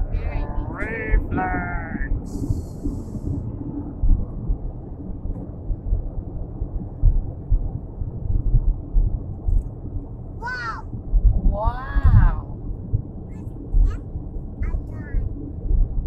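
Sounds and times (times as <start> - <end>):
car cabin road noise: 0.0 - 16.0.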